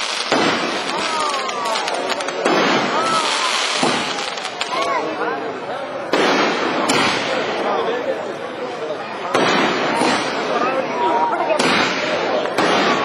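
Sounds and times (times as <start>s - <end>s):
fireworks bangs: 0.0s - 5.2s, 6.1s - 8.0s, 9.3s - 13.0s
fireworks crackle: 0.0s - 5.4s, 6.1s - 7.9s, 9.3s - 13.0s.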